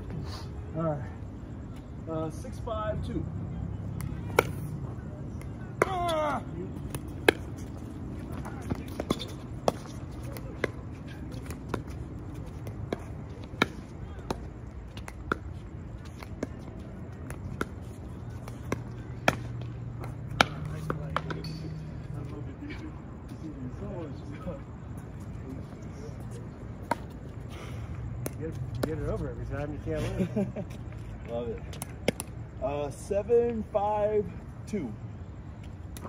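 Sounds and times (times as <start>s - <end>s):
ball bouncing on court: 5.6s - 21.6s.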